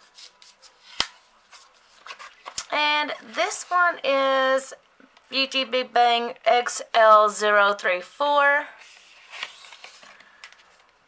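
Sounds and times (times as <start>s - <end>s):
card sleeve rustling: 0.1s - 3.8s, 8.8s - 11.0s.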